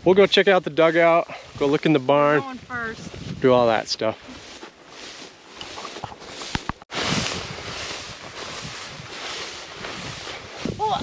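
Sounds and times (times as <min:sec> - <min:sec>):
walking through dry grass: 0:01.2 - 0:11.0.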